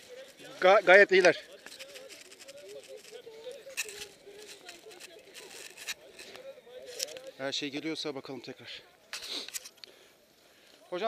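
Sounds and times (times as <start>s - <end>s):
people talking: 0.0s - 9.6s.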